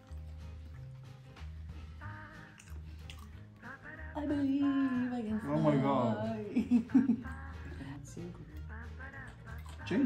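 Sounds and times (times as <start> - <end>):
woman singing: 2.0 - 2.6, 3.6 - 9.8.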